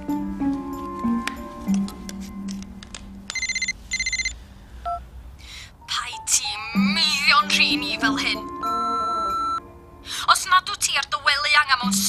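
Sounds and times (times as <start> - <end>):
faint background music: 0.0 - 3.7, 4.9 - 12.0
mobile phone ringing: 3.3 - 5.0, 7.1 - 9.7
short beep: 8.6 - 9.6.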